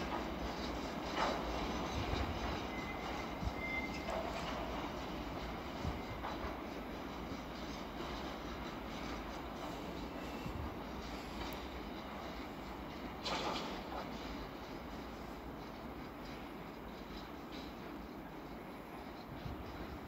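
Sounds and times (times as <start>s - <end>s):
freight train wheels rumbling: 0.0s - 20.0s
train wheel squeal: 0.0s - 20.0s.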